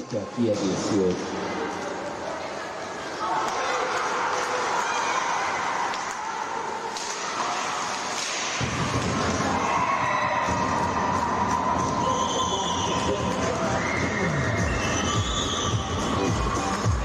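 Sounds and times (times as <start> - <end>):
small crowd: 0.0 - 17.0.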